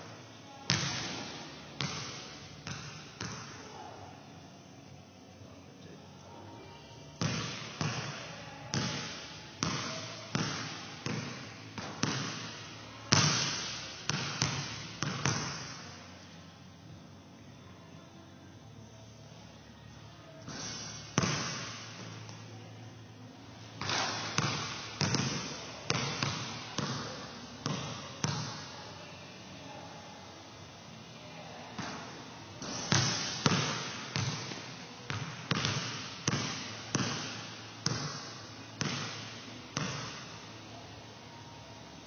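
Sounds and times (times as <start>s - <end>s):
basketball bouncing on gym floor: 0.7s - 3.7s, 7.2s - 15.9s, 20.4s - 22.4s, 23.8s - 28.7s, 31.8s - 40.4s.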